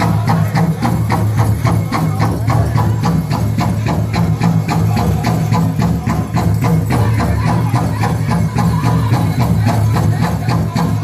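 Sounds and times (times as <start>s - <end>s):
group singing: 0.0s - 1.4s, 2.0s - 11.0s
big drum fast even beat: 0.0s - 11.0s.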